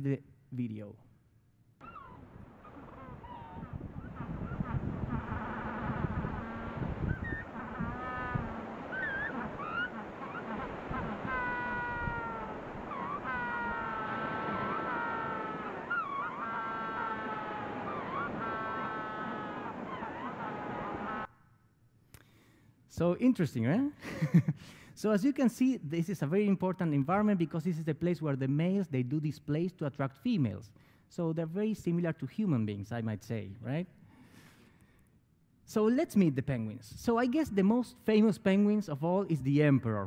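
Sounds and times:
penguins calling: 1.8 - 21.3
surf rushing: 2.0 - 21.3.

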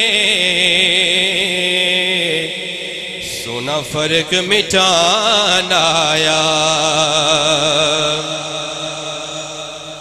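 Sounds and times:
man singing through microphone: 0.0 - 10.0.

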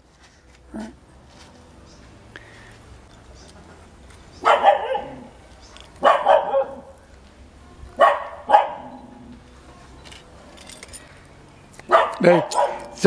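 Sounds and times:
dog barking: 4.4 - 5.3, 6.0 - 6.9, 8.0 - 9.0, 11.9 - 13.0.

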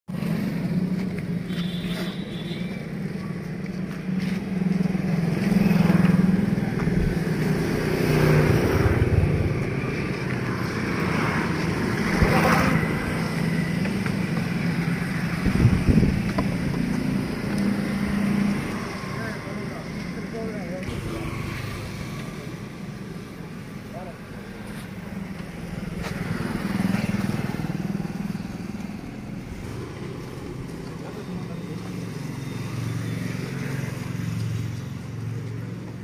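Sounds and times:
vehicles passing on road: 0.1 - 36.0.

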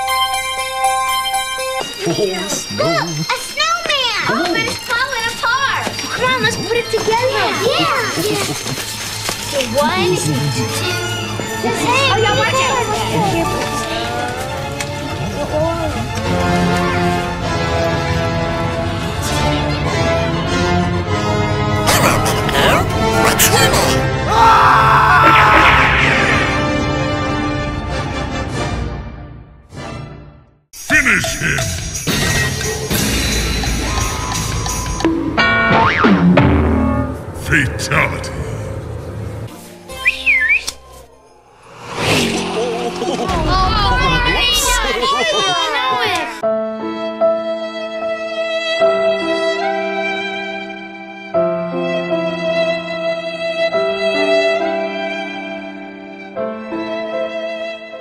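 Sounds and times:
music: 0.0 - 58.0
voice with sliding pitch: 21.8 - 24.1
voices: 21.8 - 26.4, 42.6 - 46.4
warbling whistle: 39.9 - 41.6.

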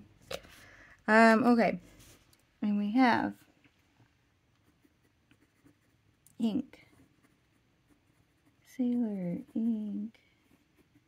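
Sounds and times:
fountain pen scratching on paper: 4.6 - 6.0, 6.7 - 11.0.

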